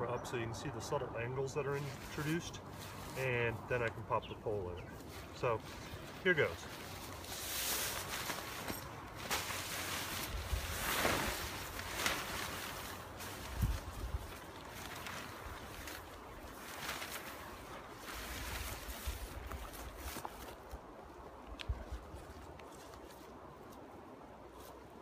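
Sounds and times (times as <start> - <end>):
tent fabric rustling: 1.7 - 3.5, 4.9 - 20.8
wind gusting on microphone: 10.0 - 11.9, 13.4 - 14.6.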